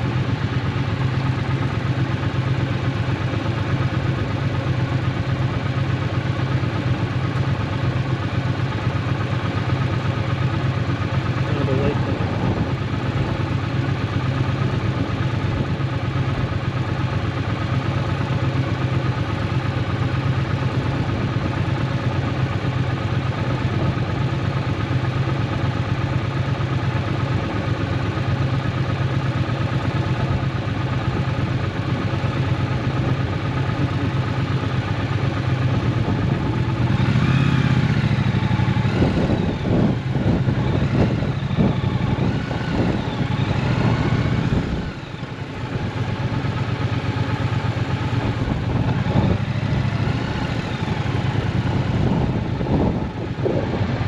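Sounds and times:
motorcycle engine idling: 0:00.0 - 0:54.0.

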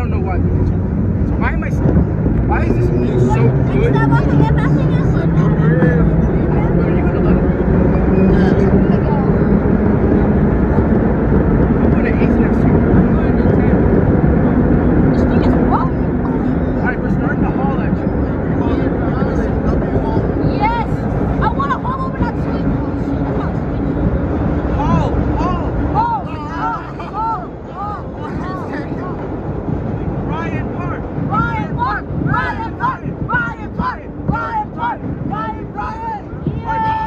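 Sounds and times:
subway train motor hum: 0:00.0 - 0:37.0.

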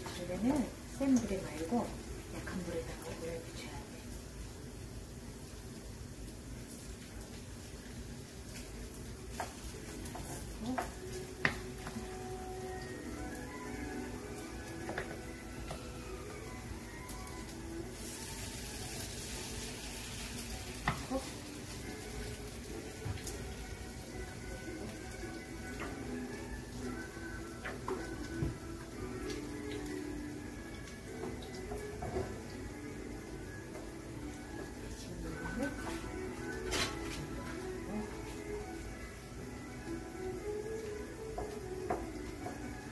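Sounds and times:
pancakes frying in oil: 0:00.0 - 0:42.9
background music: 0:09.4 - 0:42.9.

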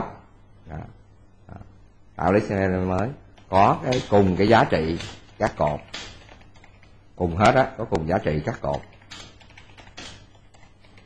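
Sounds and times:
computer keyboard typing: 0:03.3 - 0:07.6, 0:08.6 - 0:11.0.

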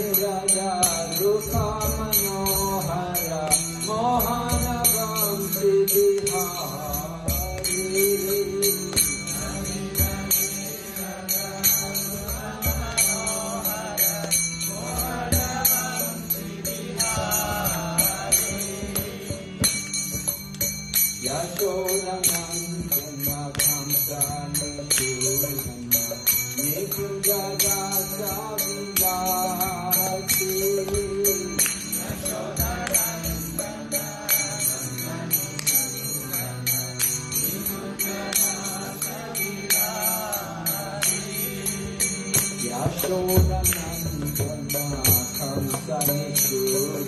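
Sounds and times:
hand cymbals struck: 0:00.0 - 0:47.0.

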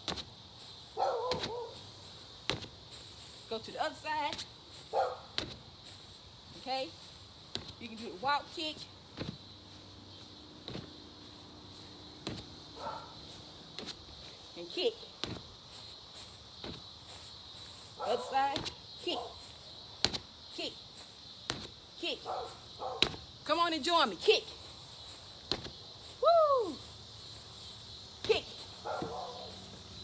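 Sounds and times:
high insect buzz: 0:00.0 - 0:30.0
kicks thudding on punching bag: 0:01.3 - 0:01.6, 0:02.4 - 0:02.8, 0:05.3 - 0:05.7, 0:07.5 - 0:07.8, 0:09.1 - 0:09.5, 0:10.6 - 0:11.0, 0:12.2 - 0:12.6, 0:15.2 - 0:15.6, 0:20.0 - 0:20.3, 0:21.4 - 0:21.8, 0:23.0 - 0:23.3, 0:25.4 - 0:25.8.

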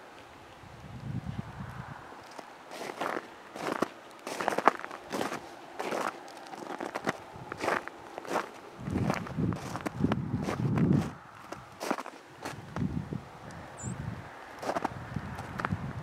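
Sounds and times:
footsteps crunching in snow: 0:02.2 - 0:13.0, 0:14.6 - 0:15.7.

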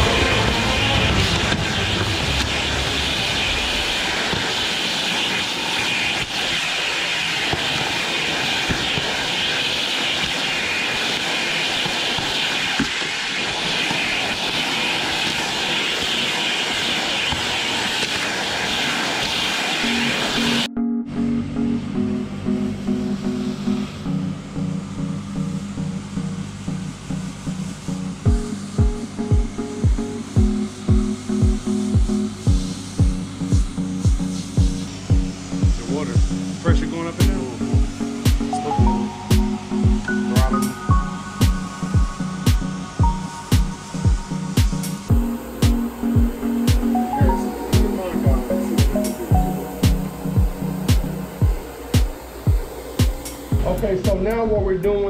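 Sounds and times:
vacuum cleaner suction on carpet: 0:00.0 - 0:20.7, 0:27.4 - 0:54.3
background music with beat: 0:27.8 - 0:54.8.

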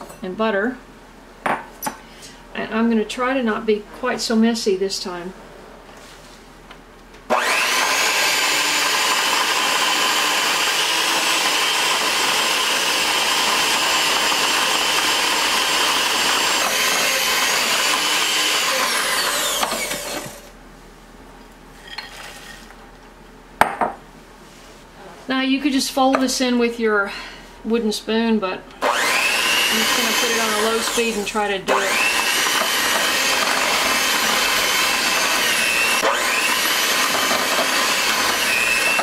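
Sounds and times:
electric hand mixer whining: 0:07.3 - 0:20.5, 0:28.8 - 0:39.0.

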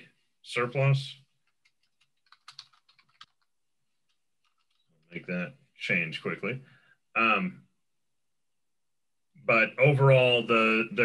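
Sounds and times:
keyboard typing: 0:01.4 - 0:05.2.

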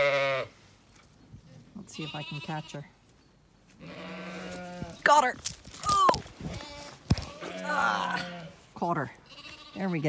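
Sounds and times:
sheep bleating: 0:00.0 - 0:00.6, 0:01.9 - 0:02.9, 0:03.8 - 0:05.0, 0:06.5 - 0:08.6, 0:09.2 - 0:10.0.

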